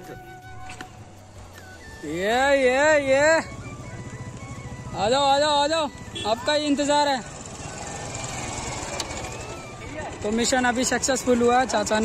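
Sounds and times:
small motorcycle engine putter: 0:08.4 - 0:10.4.

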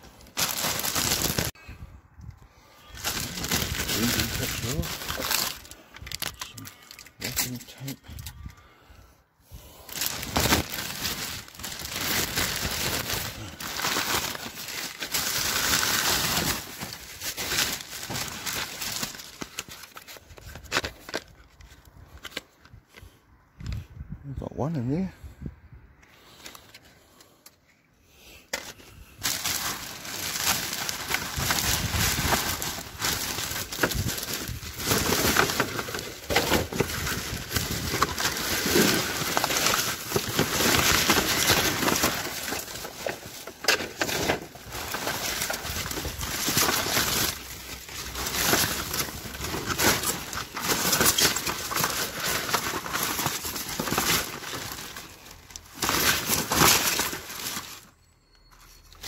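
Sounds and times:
plastic bags crinkling: 0:00.0 - 0:01.6, 0:02.8 - 0:08.4, 0:09.8 - 0:22.4, 0:28.6 - 0:57.9.

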